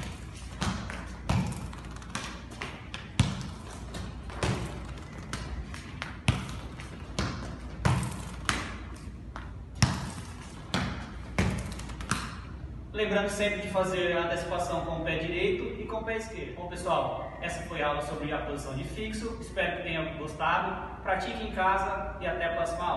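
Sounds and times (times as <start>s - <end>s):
ball kicks on hard floor: 0.0s - 12.4s.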